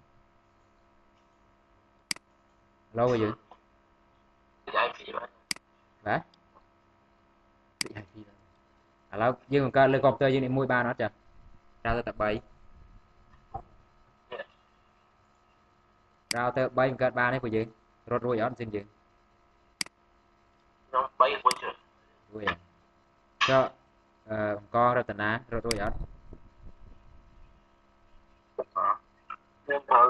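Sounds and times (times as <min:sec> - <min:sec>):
faint steady hum: 0:00.0 - 0:30.0
man speaking: 0:03.0 - 0:03.5, 0:04.7 - 0:05.4, 0:06.0 - 0:06.3, 0:09.1 - 0:11.2, 0:11.9 - 0:12.4, 0:16.4 - 0:18.9, 0:20.9 - 0:22.6, 0:23.4 - 0:26.0, 0:28.6 - 0:29.0, 0:29.7 - 0:30.0
man hesitation sound: 0:04.7 - 0:05.4, 0:20.9 - 0:22.6, 0:23.4 - 0:24.6, 0:28.6 - 0:30.0.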